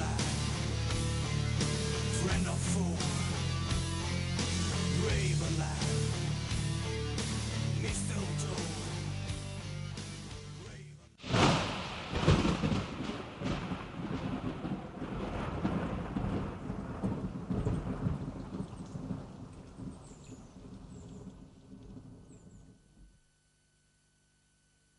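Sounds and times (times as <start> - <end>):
rain: 11.2 - 22.8
thunder rumbling: 11.2 - 22.8.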